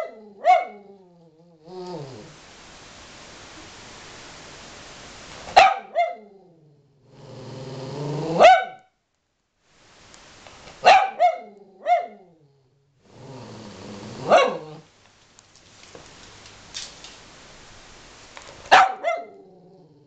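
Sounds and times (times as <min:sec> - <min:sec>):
dog barking: 0:00.0 - 0:00.8, 0:05.5 - 0:06.3, 0:08.4 - 0:08.9, 0:10.8 - 0:12.2, 0:14.2 - 0:14.8, 0:18.7 - 0:19.4
dog growling: 0:00.0 - 0:02.4, 0:06.2 - 0:08.5, 0:11.3 - 0:14.9, 0:19.0 - 0:20.0.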